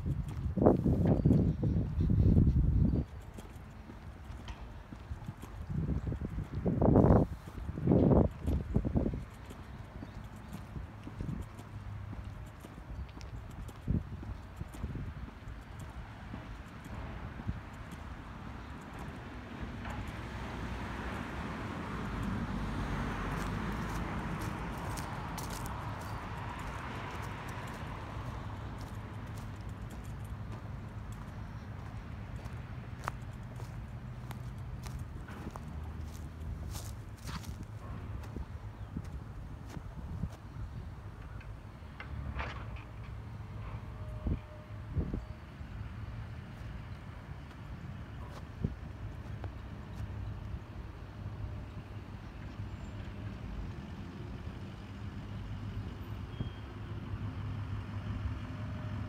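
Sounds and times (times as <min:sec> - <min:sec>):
footsteps on a path: 0:00.0 - 0:40.9, 0:47.4 - 0:50.4
wind rumble on microphone: 0:00.0 - 0:46.0, 0:46.6 - 0:52.1
footsteps on grass: 0:23.2 - 0:40.4.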